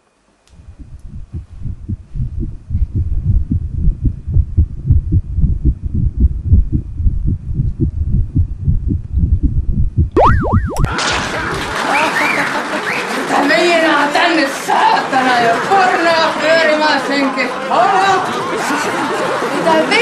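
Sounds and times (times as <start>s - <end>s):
deep rapid throbbing pulses: 0.6s - 10.9s.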